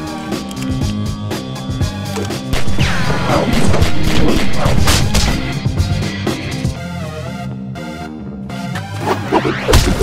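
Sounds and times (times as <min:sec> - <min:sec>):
action music with steady beat: 0:00.0 - 0:10.0.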